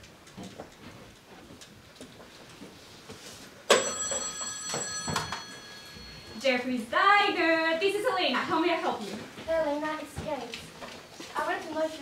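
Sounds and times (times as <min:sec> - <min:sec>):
telephone bell ringing: 0:03.7 - 0:06.5.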